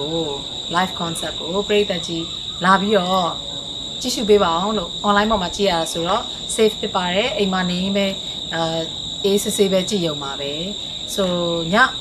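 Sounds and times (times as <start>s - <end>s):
woman talking: 0.0s - 3.4s, 4.0s - 12.0s
high-pitched insect drone: 0.0s - 12.0s.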